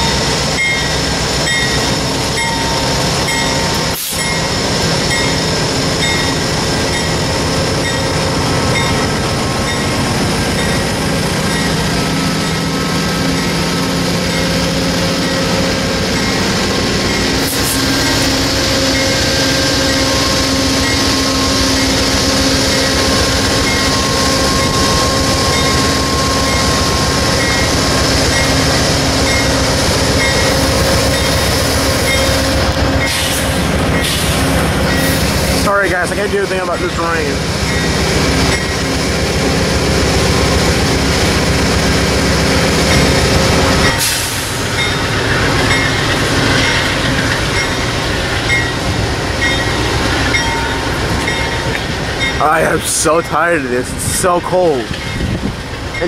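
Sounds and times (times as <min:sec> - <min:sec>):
diesel locomotive engine drone: 0:00.0 - 0:56.0.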